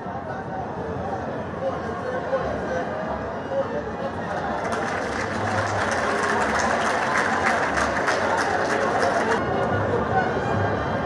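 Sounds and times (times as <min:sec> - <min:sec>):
crowd din: 0:01.8 - 0:11.0
crowd applauding: 0:04.1 - 0:09.4.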